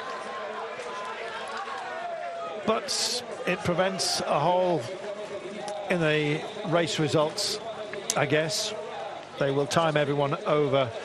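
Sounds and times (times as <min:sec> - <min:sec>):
crowd cheering and shouting: 0:00.0 - 0:11.0.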